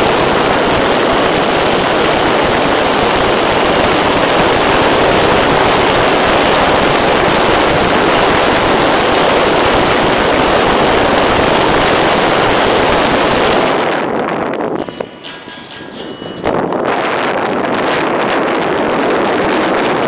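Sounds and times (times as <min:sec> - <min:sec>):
airflow and motor rushing: 0:00.0 - 0:20.0
faint high whine: 0:00.0 - 0:20.0.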